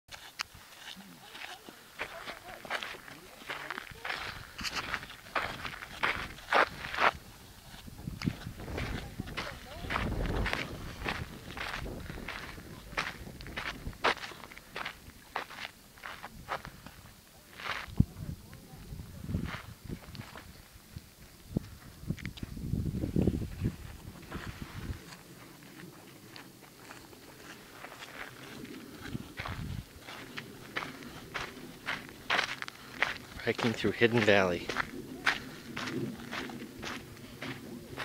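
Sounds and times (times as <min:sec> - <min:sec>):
footsteps on sandy dirt trail: 0:00.1 - 0:38.0.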